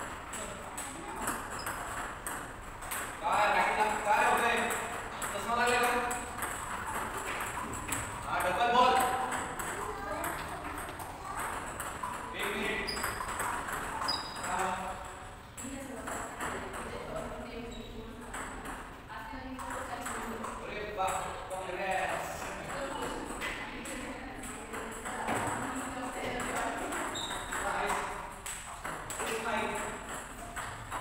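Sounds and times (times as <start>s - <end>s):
ping pong ball hitting paddles: 0.0s - 17.5s, 18.1s - 31.0s
ping pong ball bouncing on table: 0.1s - 17.5s, 18.1s - 31.0s.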